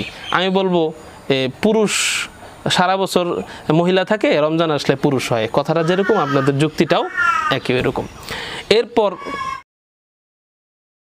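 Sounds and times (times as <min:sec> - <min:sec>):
man speaking: 0:00.0 - 0:09.4
high-pitched animal cry: 0:05.7 - 0:07.8, 0:09.0 - 0:09.6.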